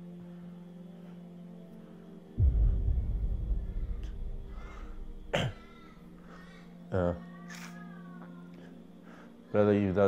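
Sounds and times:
low sustained drone: 0:00.0 - 0:06.9.

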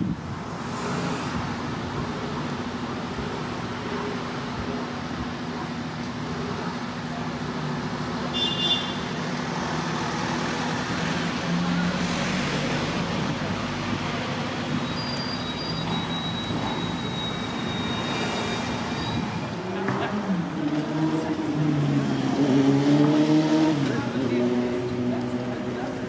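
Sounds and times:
road traffic: 0:00.0 - 0:26.0
thin high squeaks: 0:14.8 - 0:19.6.

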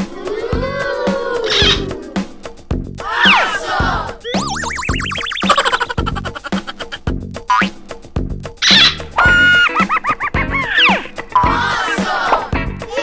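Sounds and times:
upbeat background music: 0:00.0 - 0:13.0
cartoon boing sound effects: 0:04.3 - 0:06.7, 0:07.5 - 0:07.8.

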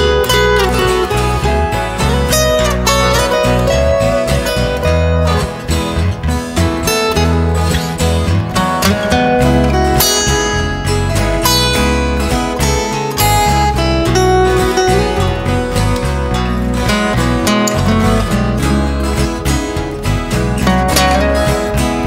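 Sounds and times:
acoustic guitar playing: 0:00.0 - 0:22.0.

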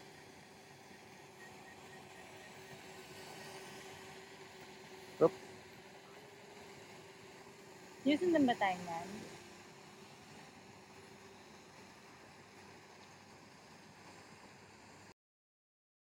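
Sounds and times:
quadcopter hovering hum: 0:00.0 - 0:15.1.

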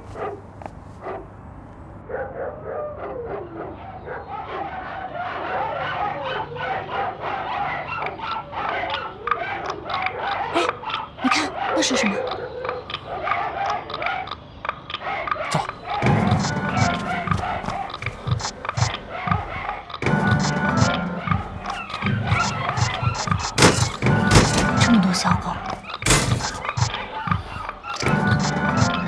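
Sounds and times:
many dogs barking: 0:02.0 - 0:14.4, 0:15.0 - 0:19.9, 0:21.1 - 0:29.0.

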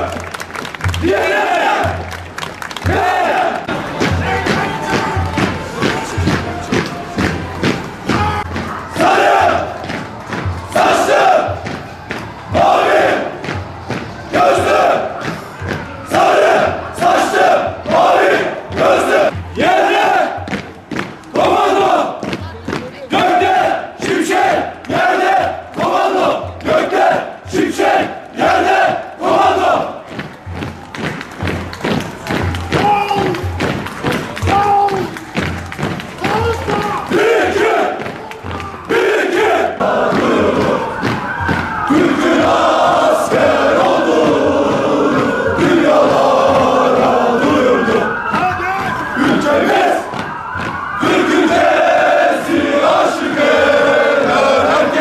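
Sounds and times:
soldiers chanting in unison: 0:08.1 - 0:20.5, 0:21.3 - 0:22.4, 0:23.1 - 0:30.0, 0:36.7 - 0:55.0.

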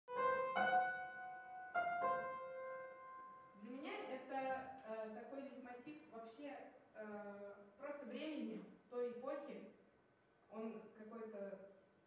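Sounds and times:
piano chord ringing: 0:00.1 - 0:03.6
woman speaking: 0:03.6 - 0:09.8, 0:10.5 - 0:11.7.

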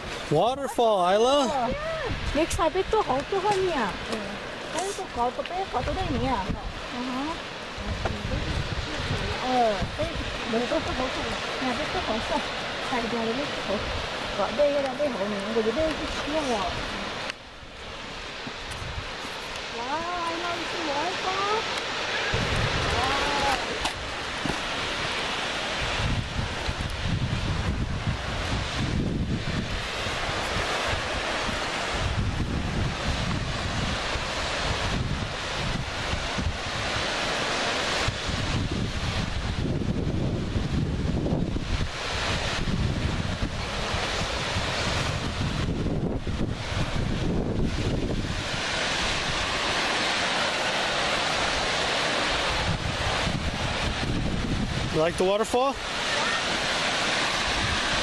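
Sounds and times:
waterfall rushing: 0:00.0 - 0:58.0
wind noise on microphone: 0:00.0 - 0:58.0.

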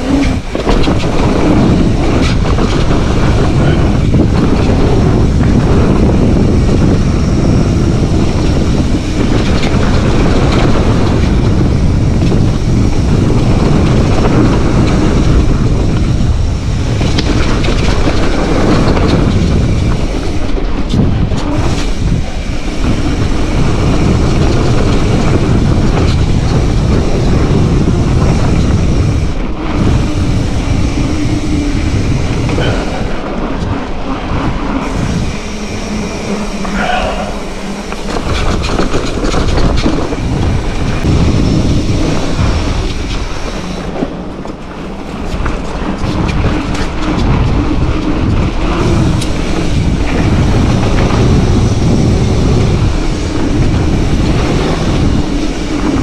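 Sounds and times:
bike chain and frame rattling: 0:00.0 - 0:56.0
wind buffeting microphone: 0:00.0 - 0:56.0.

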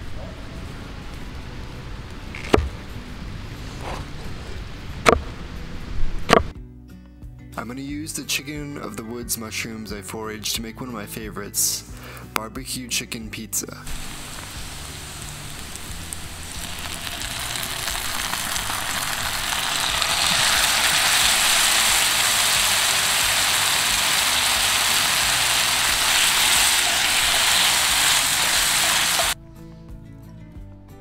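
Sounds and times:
vegetables sizzling in a skillet: 0:13.9 - 0:29.4.

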